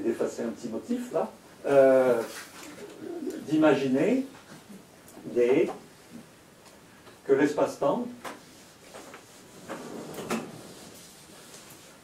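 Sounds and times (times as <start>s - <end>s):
blackboard panel scraping slide: 9.3s - 11.3s.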